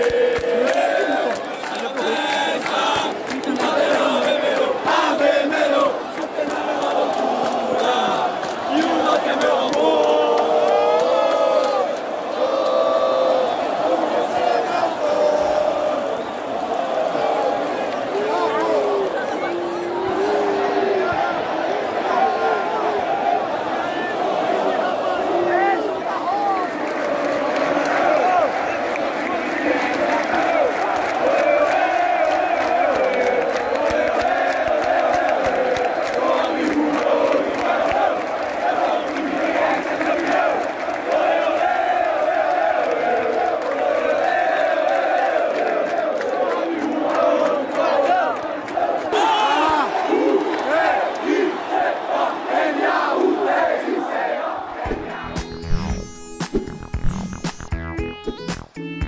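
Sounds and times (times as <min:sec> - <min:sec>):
crowd chanting: 0:00.0 - 0:56.0
music: 0:54.8 - 0:59.0.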